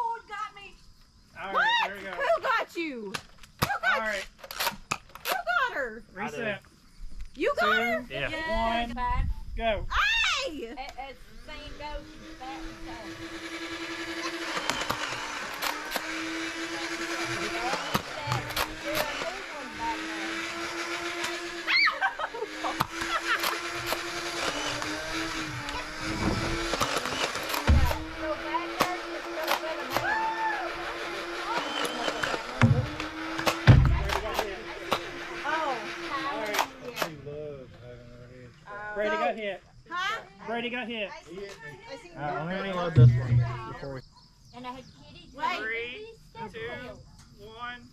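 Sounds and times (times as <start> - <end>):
sharp clicks: 4.4 - 5.5, 13.4 - 19.4, 22.6 - 28.1, 28.8 - 30.1, 31.4 - 35.3, 36.4 - 37.2
low thumps: 32.3 - 35.1, 42.9 - 43.8.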